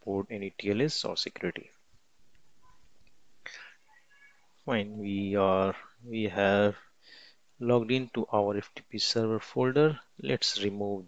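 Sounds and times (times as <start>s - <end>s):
person breathing: 3.4s - 3.9s, 6.8s - 7.5s.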